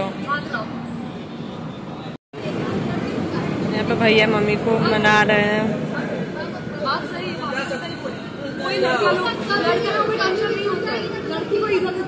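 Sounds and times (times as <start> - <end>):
overlapping conversational voices: 2.4 - 12.0.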